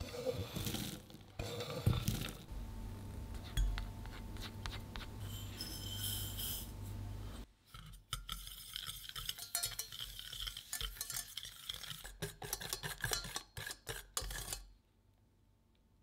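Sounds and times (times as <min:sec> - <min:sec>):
wire whisk clicking against metal pan: 0:09.1 - 0:14.6.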